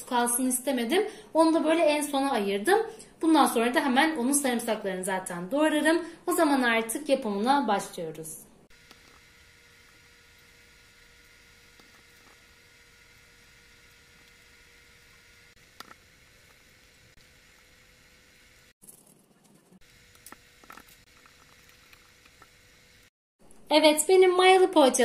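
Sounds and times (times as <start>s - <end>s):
thin steady hum: 8.5s - 23.7s.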